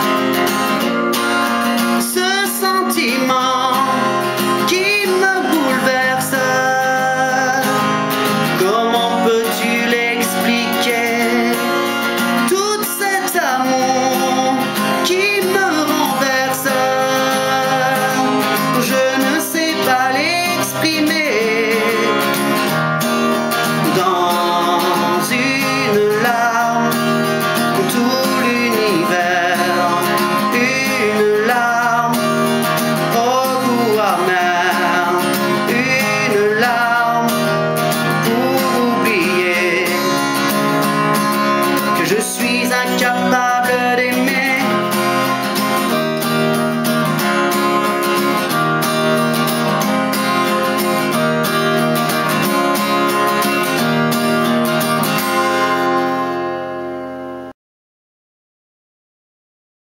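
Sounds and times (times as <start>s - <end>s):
person singing: 0.0s - 46.5s
acoustic guitar strumming: 0.0s - 57.6s.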